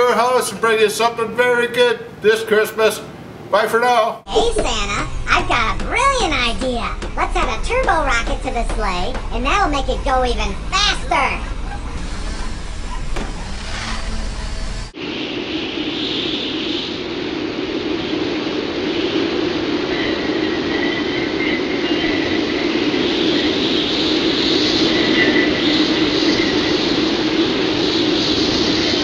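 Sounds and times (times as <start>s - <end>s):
rushing engine-like roar: 4.4s - 15.0s.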